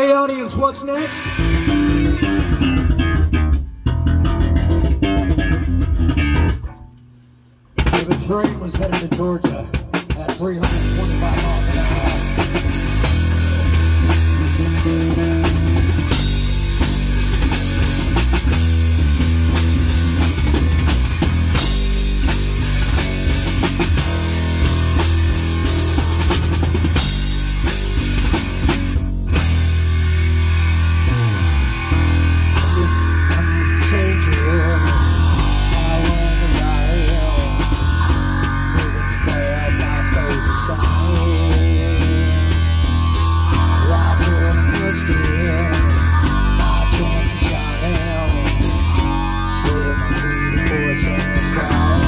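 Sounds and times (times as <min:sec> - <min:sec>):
live rock band playing: 0:00.0 - 0:07.0, 0:07.7 - 0:52.0
electric bass and guitar riff: 0:00.0 - 0:52.0.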